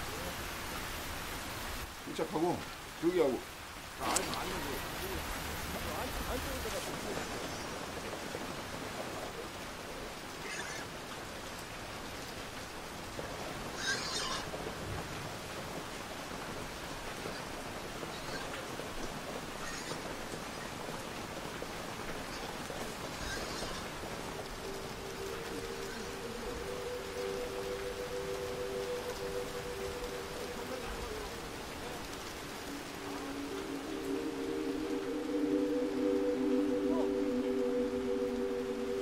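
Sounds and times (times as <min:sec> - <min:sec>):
steady rain falling: 0:00.0 - 0:39.0
two-note hum: 0:32.6 - 0:39.0.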